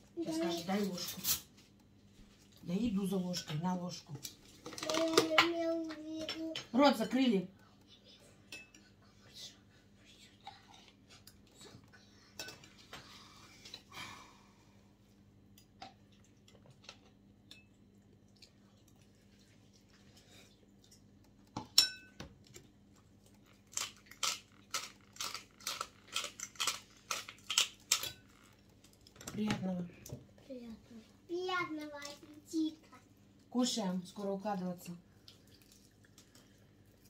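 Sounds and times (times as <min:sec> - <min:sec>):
spoon clinking on bowl: 0:21.7 - 0:22.2.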